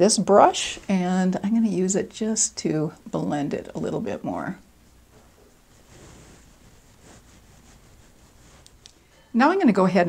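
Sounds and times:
makeup brush swishing on skin: 4.7s - 9.2s.

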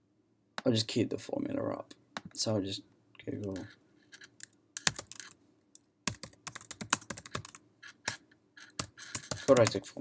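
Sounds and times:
computer keyboard typing: 3.4s - 5.4s, 6.0s - 9.8s.

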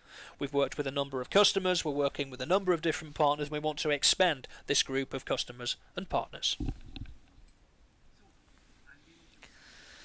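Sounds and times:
man speaking: 0.4s - 6.6s.

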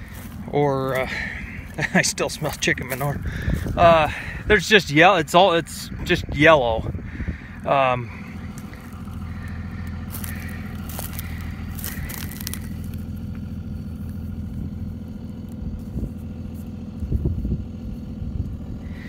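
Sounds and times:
crackling and crunching steps: 0.0s - 5.4s, 6.7s - 18.2s
low motor hum: 0.0s - 19.0s.

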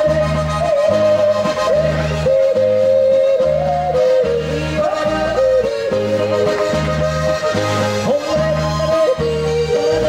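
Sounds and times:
accordion: 0.0s - 10.0s
acoustic guitar: 0.0s - 10.0s
man yodeling: 0.0s - 10.0s.

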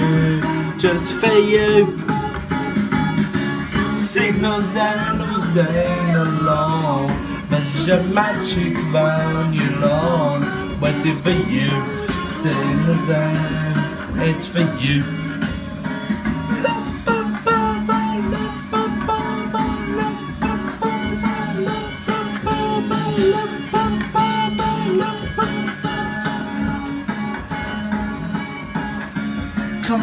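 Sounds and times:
plucked-string melody over backing: 4.2s - 30.0s.

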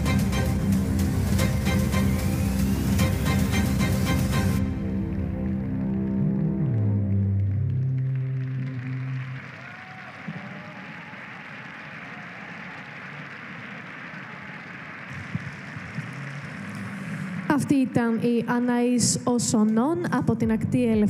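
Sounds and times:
audience applauding: 0.0s - 17.9s.

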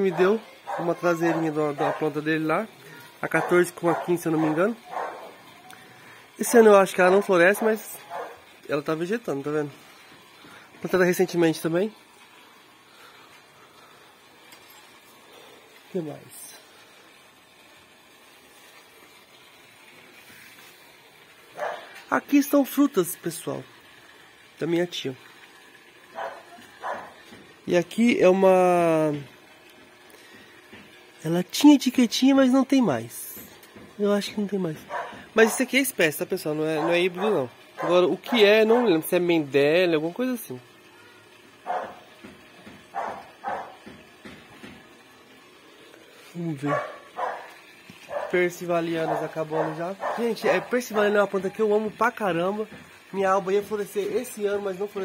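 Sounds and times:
dog barking: 0.1s - 2.1s, 3.3s - 5.4s, 7.2s - 8.4s, 21.6s - 21.9s, 26.1s - 27.2s, 34.9s - 35.7s, 36.8s - 39.0s, 41.6s - 42.0s, 42.9s - 43.8s, 46.7s - 47.5s, 48.1s - 48.4s, 49.0s - 50.8s.

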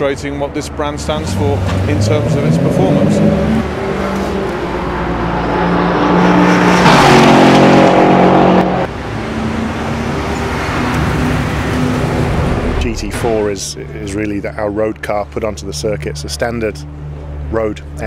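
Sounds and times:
race car engine at high revs: 1.0s - 12.9s.

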